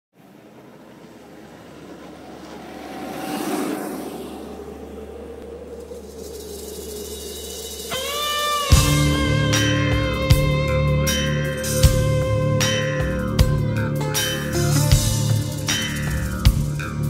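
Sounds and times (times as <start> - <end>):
motor scooter whine passing: 0.1 - 10.8.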